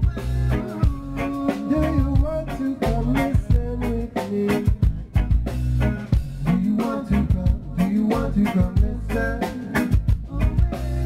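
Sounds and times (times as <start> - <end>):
drum kit beat: 0.0 - 11.0
live band music: 0.0 - 11.0
sustained bass notes: 0.0 - 11.0.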